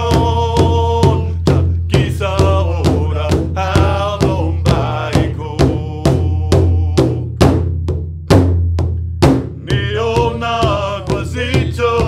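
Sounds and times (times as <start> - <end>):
large drum beating: 0.0 - 12.0.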